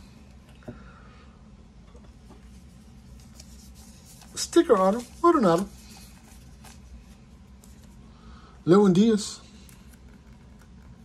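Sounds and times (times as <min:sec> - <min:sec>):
low room hum: 0:00.0 - 0:11.0
trading card rubbing and scratching: 0:02.5 - 0:07.9.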